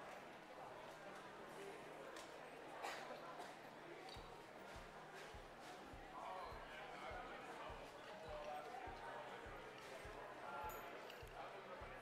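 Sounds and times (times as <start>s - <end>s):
faint voices of people talking: 0.0s - 12.0s.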